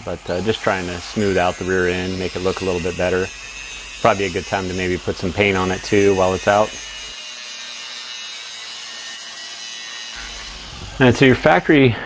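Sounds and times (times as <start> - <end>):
angle grinder grinding metal: 0.0 - 12.0.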